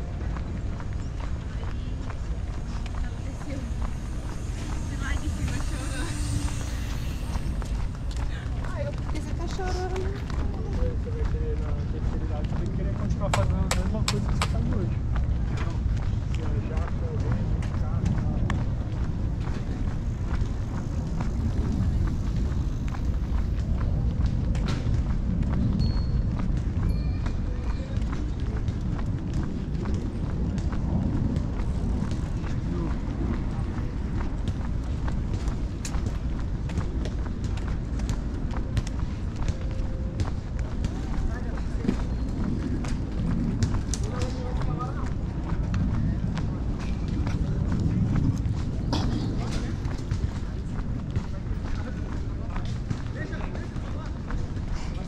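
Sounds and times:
footsteps on pavement: 0:00.0 - 0:55.0
steady low rumble: 0:00.0 - 0:55.0
indistinct voices: 0:00.6 - 0:11.6.

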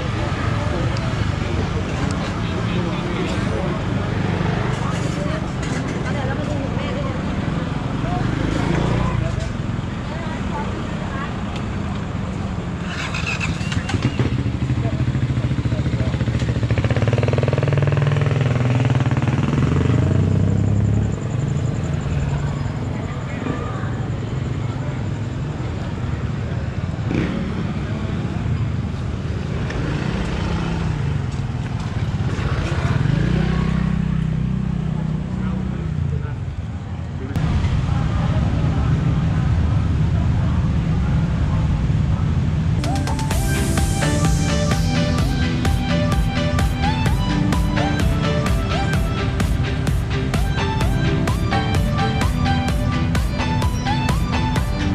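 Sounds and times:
motorbike engines passing: 0:00.0 - 0:54.9
steady traffic hum: 0:00.0 - 0:54.9.

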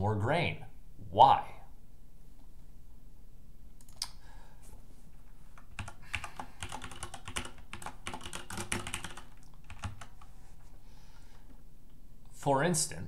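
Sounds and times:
keyboard typing: 0:03.8 - 0:04.1, 0:05.6 - 0:10.3.

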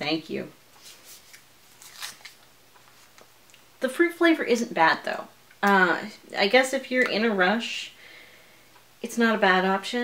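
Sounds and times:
plastic pouch crinkling: 0:01.1 - 0:03.2.

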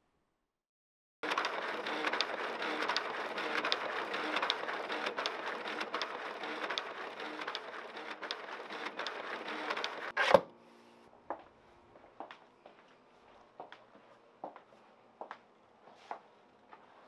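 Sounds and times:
printer clicking and rattling: 0:01.2 - 0:10.2
printer motor hum: 0:01.2 - 0:10.2.

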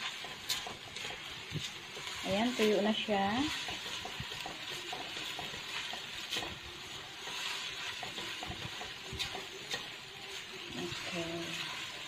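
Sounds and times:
noodles sizzling in a wok: 0:00.0 - 0:12.0.

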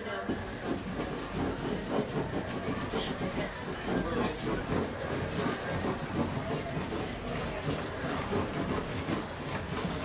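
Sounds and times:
cloth scrubbing against wall: 0:00.2 - 0:10.0.

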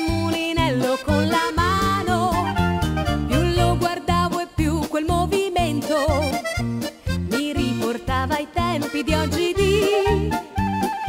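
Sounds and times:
accordion and clarinet dance music: 0:00.0 - 0:11.0.

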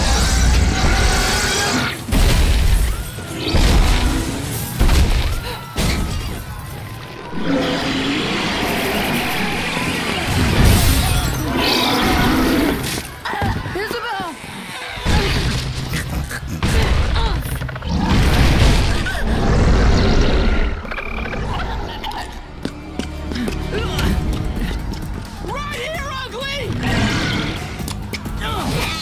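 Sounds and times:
monster roaring: 0:07.3 - 0:10.7
monster growling: 0:14.7 - 0:21.9.

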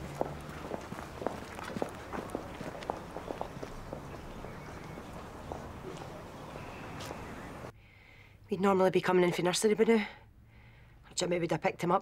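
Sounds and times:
footsteps on hard pavement: 0:00.0 - 0:07.7.

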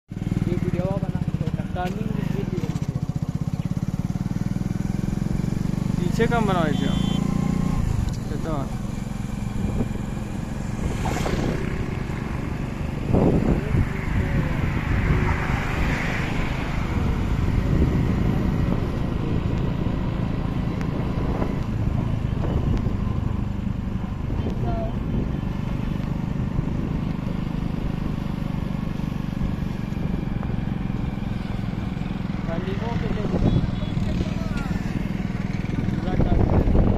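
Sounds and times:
road vehicle rumble: 0:00.0 - 0:36.9
wind buffeting microphone: 0:08.8 - 0:27.4, 0:35.0 - 0:36.9.

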